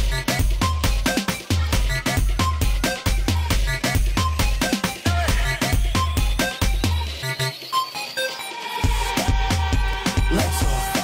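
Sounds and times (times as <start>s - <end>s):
club dance music: 0.0s - 11.0s.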